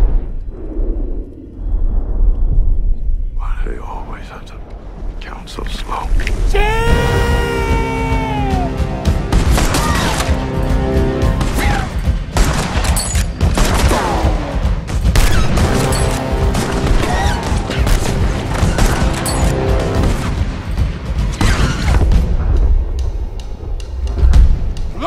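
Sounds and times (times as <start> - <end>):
man shouting: 6.5 - 9.0
orchestral score with sustained tones: 6.6 - 12.3
rapid gunfire: 12.3 - 20.2.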